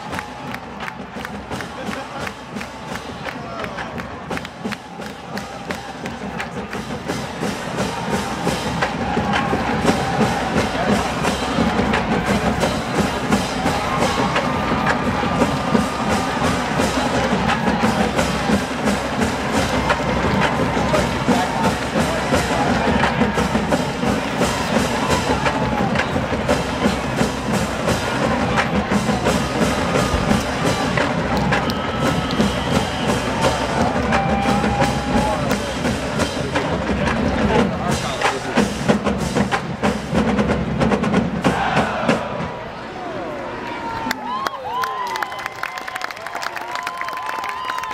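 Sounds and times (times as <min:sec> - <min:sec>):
drumline beat: 0:00.0 - 0:42.8.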